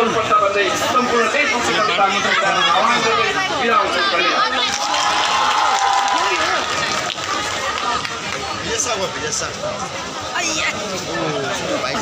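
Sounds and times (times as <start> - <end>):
crowd babble of many voices: 0.0 - 12.0.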